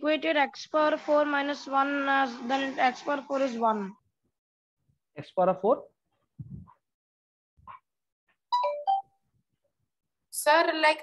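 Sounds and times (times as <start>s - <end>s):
short electronic chime: 8.6s - 9.0s.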